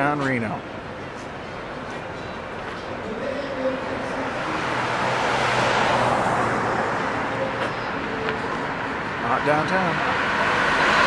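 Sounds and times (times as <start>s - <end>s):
car driving past: 3.4s - 11.0s.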